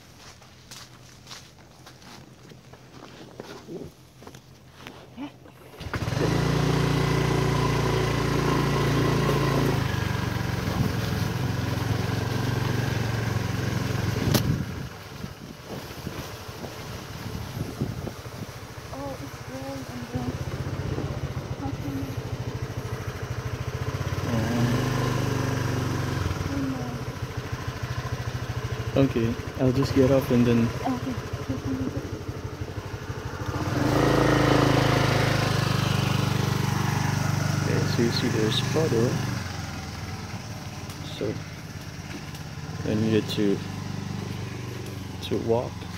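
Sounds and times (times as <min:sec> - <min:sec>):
motorbike engine running: 0:05.7 - 0:45.9.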